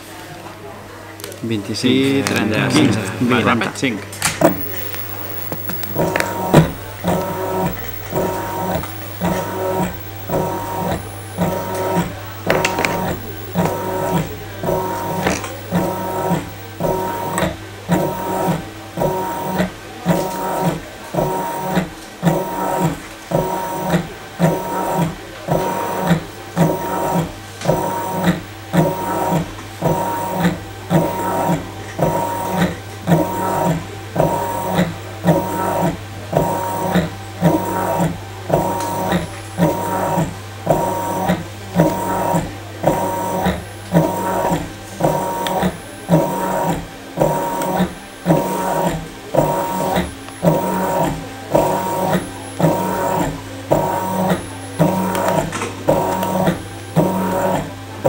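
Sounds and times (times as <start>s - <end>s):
steady low hum: 1.5s - 20.6s
wire-bending machine motors whirring: 4.2s - 58.0s.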